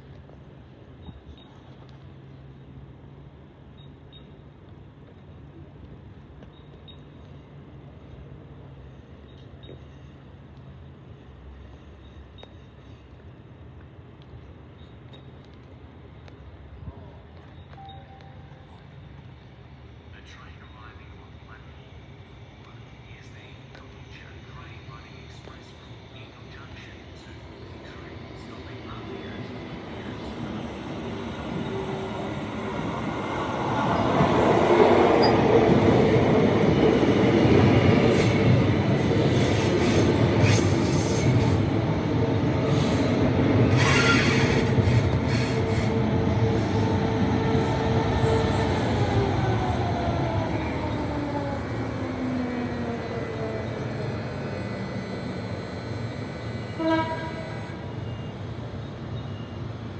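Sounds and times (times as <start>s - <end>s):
train wheel and rail noise: 0.0s - 59.9s
short beep: 17.6s - 18.6s, 54.7s - 59.7s
train motor whine: 38.9s - 59.9s.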